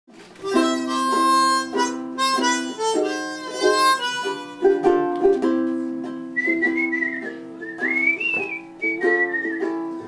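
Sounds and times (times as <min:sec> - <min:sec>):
whistled melody: 0:00.4 - 0:05.0, 0:06.0 - 0:10.0
ukulele chords strummed: 0:00.4 - 0:10.0.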